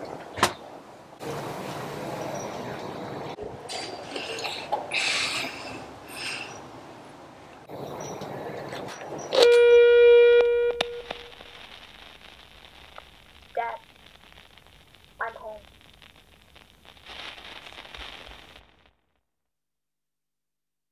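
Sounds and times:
electronic buzzer: 0:09.4 - 0:11.3.

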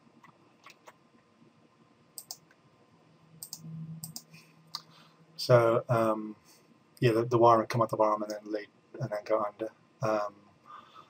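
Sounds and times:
faint low hum: 0:00.0 - 0:11.0
computer mouse clicks: 0:02.2 - 0:02.6, 0:03.4 - 0:04.9.

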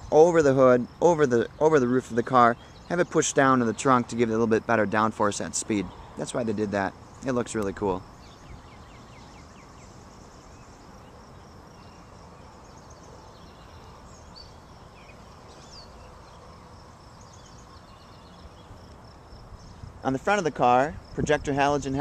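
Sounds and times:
insect trills: 0:00.0 - 0:22.0
bird chirps: 0:01.2 - 0:20.3.

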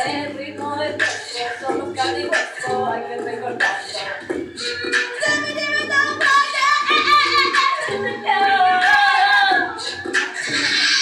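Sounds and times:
women singing a cappella: 0:00.0 - 0:10.2
looped vocal layers: 0:00.0 - 0:11.0.

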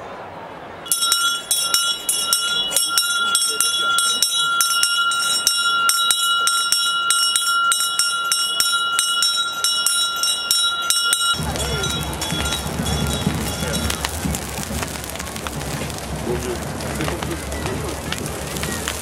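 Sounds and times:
bell rung rapidly: 0:00.9 - 0:15.0.

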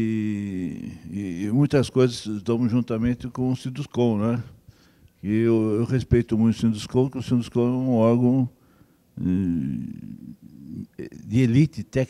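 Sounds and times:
man speaking: 0:00.0 - 0:04.6, 0:05.2 - 0:08.5, 0:09.2 - 0:12.0.

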